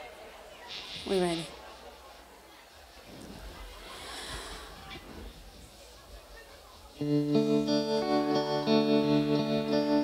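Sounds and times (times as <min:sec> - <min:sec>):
airy breath into microphone: 0:03.8 - 0:05.3.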